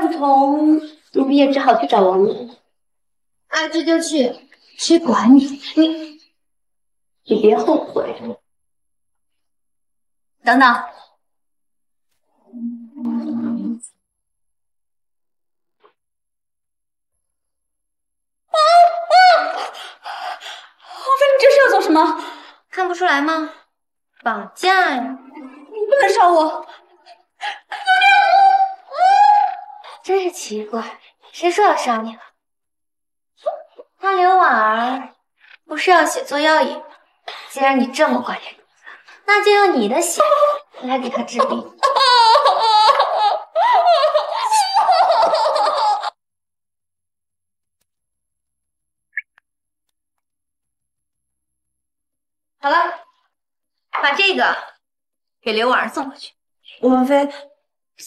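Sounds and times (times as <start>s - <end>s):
woman's high-pitched cry: 18.5s - 19.8s, 27.5s - 30.0s, 40.2s - 46.2s.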